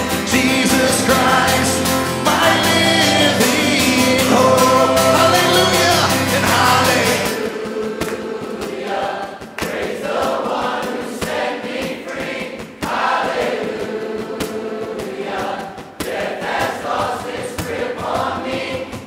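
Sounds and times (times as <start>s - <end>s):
quiet acoustic guitar: 0.0s - 7.4s
man leading singing: 0.0s - 7.7s
congregation singing: 0.0s - 19.0s.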